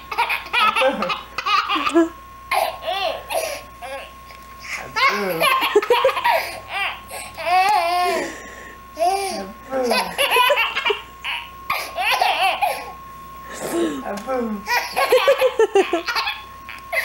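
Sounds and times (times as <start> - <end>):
infant laughing: 0.1 - 4.1, 5.0 - 8.3, 9.0 - 13.0, 14.7 - 17.0
adult laughing: 0.4 - 2.2, 5.0 - 6.6, 14.8 - 16.4.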